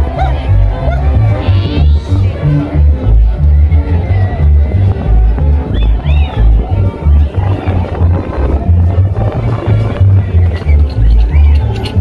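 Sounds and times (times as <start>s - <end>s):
heavy bass line: 0.0s - 12.0s
loud live dance-band music: 0.0s - 12.0s.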